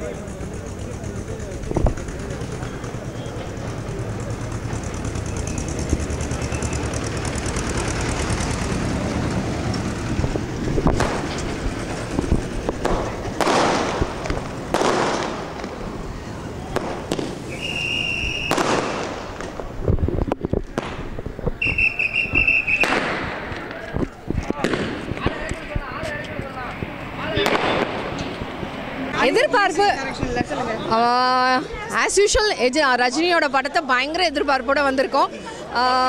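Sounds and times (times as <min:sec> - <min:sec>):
fireworks hissing and crackling: 0:00.1 - 0:29.7
firework pops: 0:10.8 - 0:11.5, 0:12.2 - 0:15.8, 0:16.7 - 0:25.6, 0:27.4 - 0:28.5.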